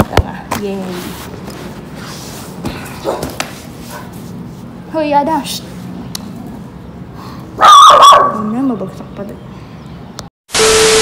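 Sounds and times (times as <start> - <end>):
dog yelping: 7.6 - 8.5.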